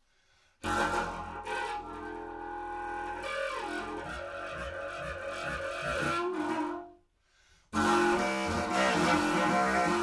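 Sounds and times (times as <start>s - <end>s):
low wind instrument drone: 7.8s - 10.0s.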